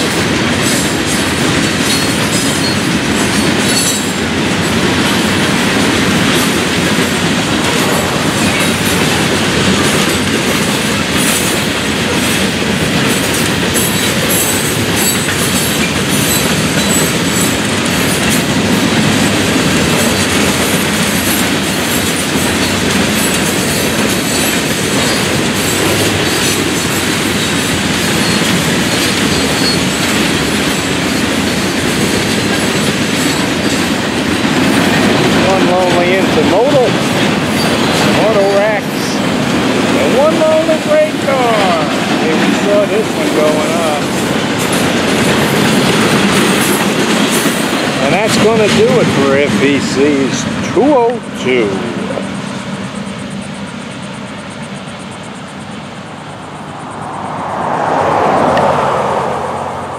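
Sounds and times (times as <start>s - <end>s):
freight car wheels on rails: 0.0s - 39.2s
wheels clicking over track: 0.0s - 52.2s.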